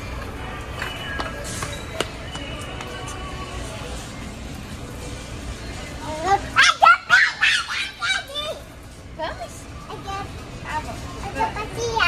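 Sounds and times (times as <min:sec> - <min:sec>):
supermarket background hum: 0:00.0 - 0:12.0
toddler squealing: 0:06.6 - 0:08.4.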